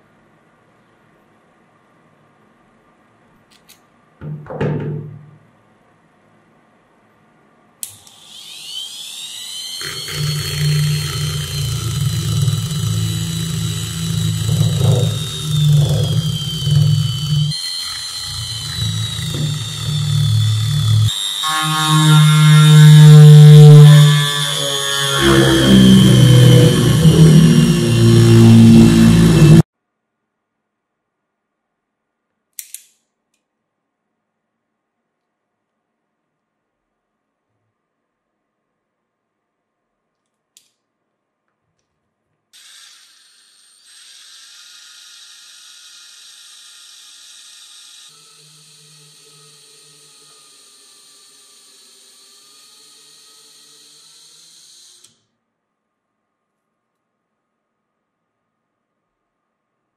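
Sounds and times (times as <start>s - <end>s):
rotary tool whining: 7.8s - 29.6s, 42.6s - 55.2s
sanding drum grinding wood: 9.8s - 29.6s.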